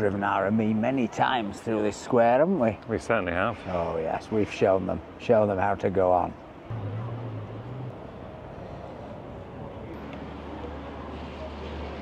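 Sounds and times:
street background noise: 0:00.0 - 0:12.0
car engine humming: 0:06.6 - 0:11.0.

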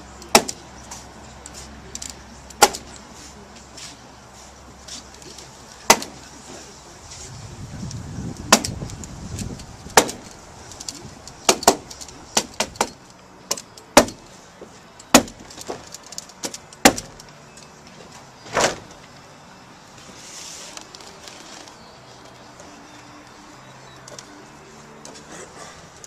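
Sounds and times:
hand tool clicks and knocks: 0:08.4 - 0:14.3, 0:15.0 - 0:17.8.

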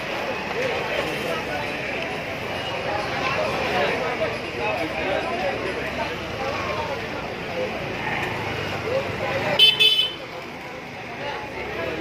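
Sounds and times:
street noise: 0:00.0 - 0:12.0
voices: 0:00.0 - 0:12.0
vehicle horn toots: 0:09.6 - 0:10.2.

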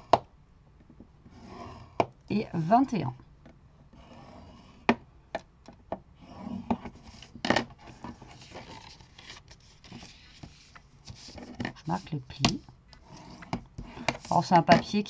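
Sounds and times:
bone folder scraping paper: 0:06.2 - 0:12.2, 0:13.0 - 0:15.0
paper being creased: 0:06.4 - 0:12.0.

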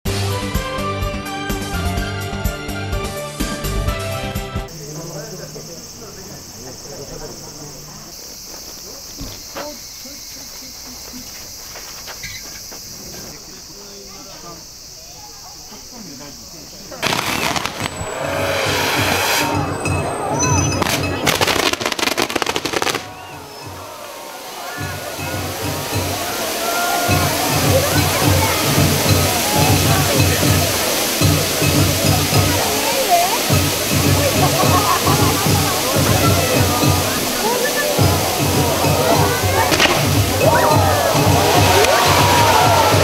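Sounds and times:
fountain fireworks hissing: 0:01.5 - 0:43.0
fireworks crackling: 0:04.7 - 0:15.3, 0:16.7 - 0:43.0
drums beating steadily: 0:17.0 - 0:43.0.

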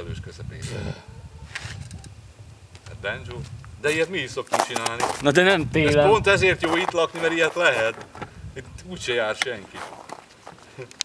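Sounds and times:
wind on microphone: 0:00.0 - 0:04.3, 0:05.0 - 0:07.2, 0:08.0 - 0:10.1.

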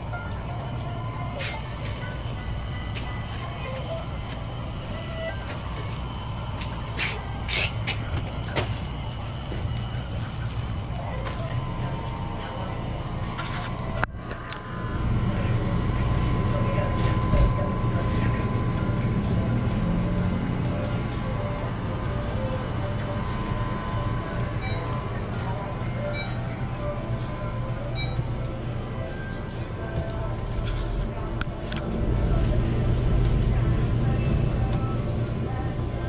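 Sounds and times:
refrigerated display cases humming: 0:00.0 - 0:36.0.

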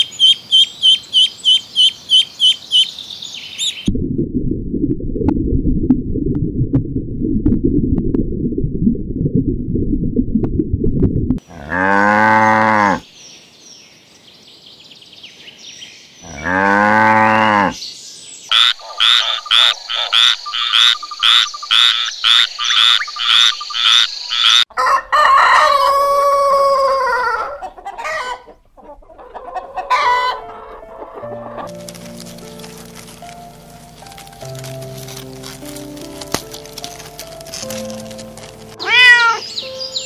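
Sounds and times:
frog croaking: 0:18.5 - 0:24.7
chickens clucking: 0:24.8 - 0:34.7.

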